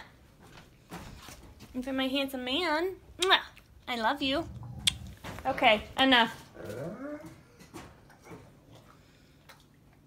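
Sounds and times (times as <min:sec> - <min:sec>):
dog whimpering: 0:06.6 - 0:07.6.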